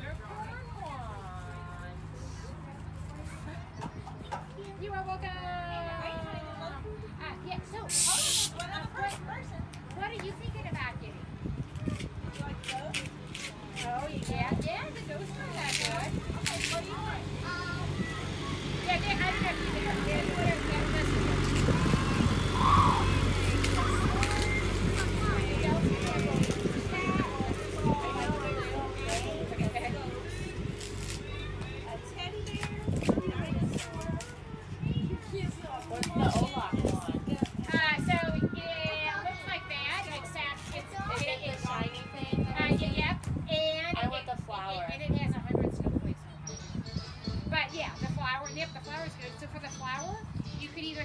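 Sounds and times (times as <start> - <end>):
faint background voices: 0.0 - 51.0
woman and child talking: 0.0 - 51.0
low motor hum: 13.9 - 35.8.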